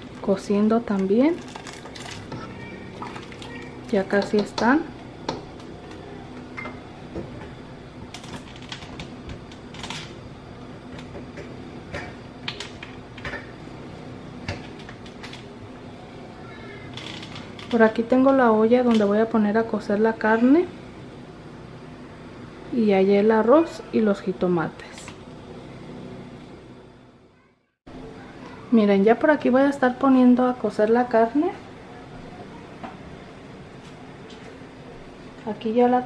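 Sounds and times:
boiling pot popping: 0.0 - 13.7
low steady hum: 0.0 - 36.0.

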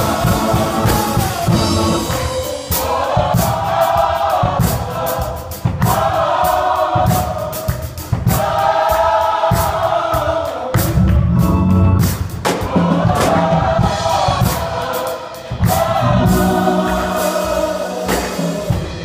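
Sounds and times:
choir singing gospel music: 0.0 - 19.0
drum kit with cymbal hits: 0.0 - 19.0.

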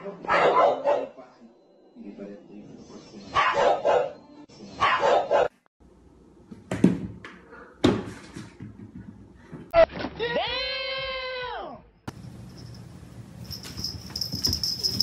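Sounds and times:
dog barking: 0.2 - 1.2, 3.3 - 4.2, 4.8 - 5.6.

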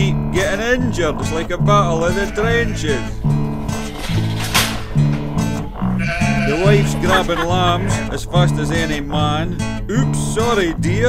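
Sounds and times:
person singing: 0.0 - 3.3, 6.4 - 11.0
acoustic guitar strumming: 0.0 - 11.0
sheep bleating: 1.0 - 9.2.

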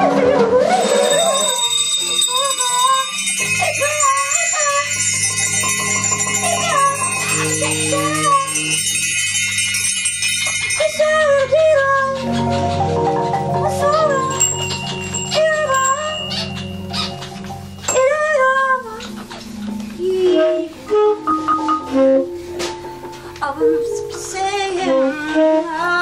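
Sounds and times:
wavering melodic line: 0.0 - 24.9
jingling metallic percussion: 0.7 - 19.8.

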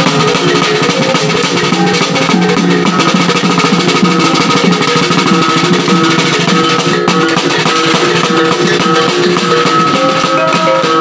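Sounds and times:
drum beats: 0.0 - 11.0
small tuned gongs melody: 0.1 - 11.0.

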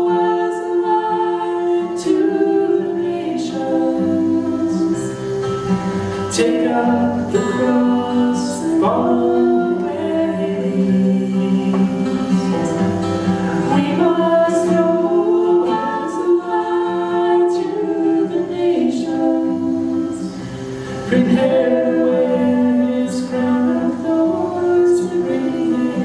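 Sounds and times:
man and woman singing: 0.0 - 5.4, 6.2 - 26.0
strummed acoustic guitar: 0.0 - 26.0.

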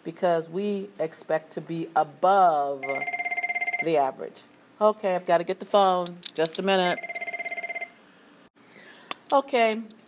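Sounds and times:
phone ringing with warbling trill: 2.8 - 4.0, 6.9 - 7.9.

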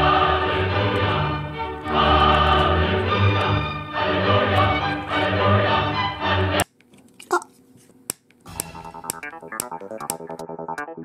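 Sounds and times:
choral music: 0.0 - 6.6, 8.5 - 11.0
electronic music with ticking beat: 8.5 - 11.0.

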